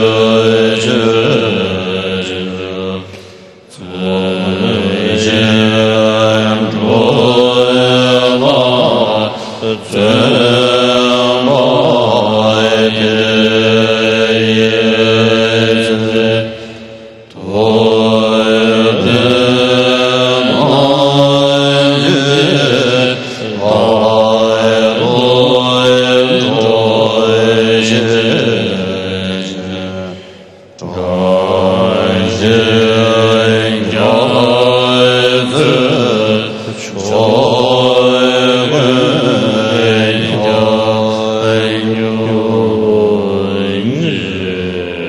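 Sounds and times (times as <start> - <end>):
monks chanting in unison: 0.0 - 45.0.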